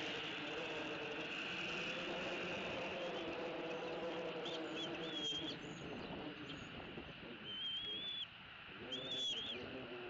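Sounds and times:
eaglet high whistling calls: 4.4s - 6.7s, 7.4s - 9.7s.

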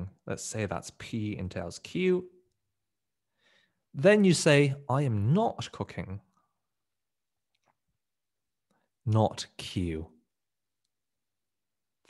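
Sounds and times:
man speaking: 0.0s - 2.4s, 3.9s - 6.3s, 9.0s - 10.2s.

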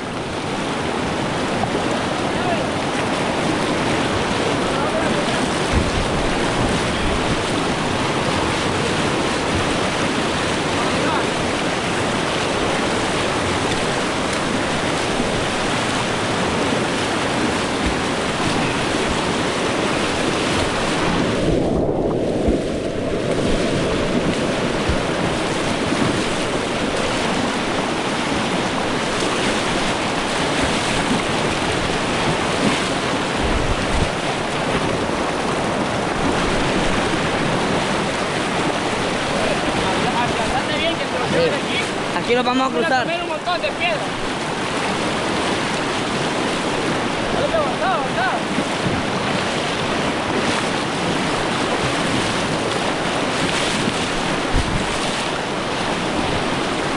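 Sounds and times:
river rapids rushing: 0.0s - 56.9s.

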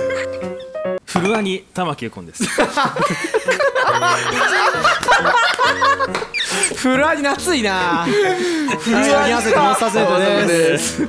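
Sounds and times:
background music: 0.0s - 1.1s, 3.0s - 11.0s
people laughing: 2.4s - 11.0s.

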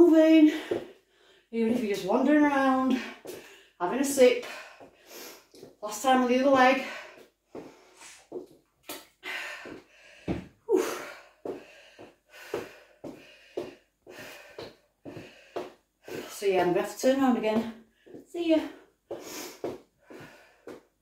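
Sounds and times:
woman speaking: 0.0s - 0.6s, 1.6s - 3.1s, 3.8s - 4.5s, 5.8s - 7.0s, 16.3s - 18.7s
woman breathing hard: 0.5s - 1.5s, 3.0s - 3.8s, 4.4s - 5.7s, 9.2s - 16.4s, 19.1s - 21.0s.

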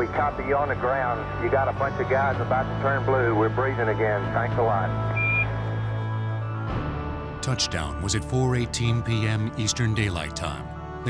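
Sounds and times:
short high radio beep: 5.1s - 5.5s.

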